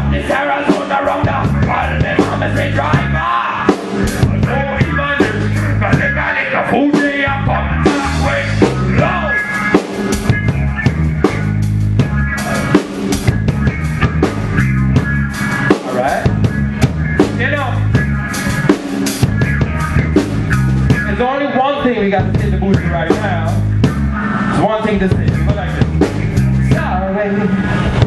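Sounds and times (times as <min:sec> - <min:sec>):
person singing: 0:00.0 - 0:09.6
drum kit beat: 0:00.0 - 0:28.0
live band playing: 0:00.0 - 0:28.0.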